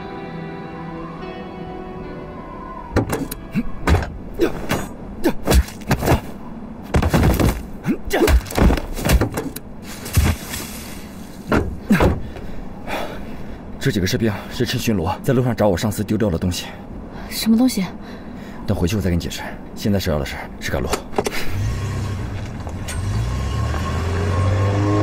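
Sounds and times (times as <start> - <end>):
film music: 0.0 - 4.4
knocks and thumps: 5.5 - 10.5, 11.5 - 12.5.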